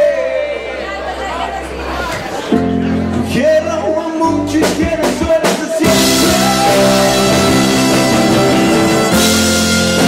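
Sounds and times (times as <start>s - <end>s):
live rock band playing: 2.3s - 10.0s.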